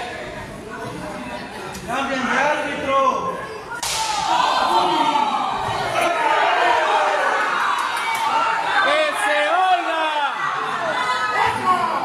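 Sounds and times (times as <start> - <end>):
sharp open-hand slap: 3.8 - 4.2
crowd shouting: 3.8 - 12.0.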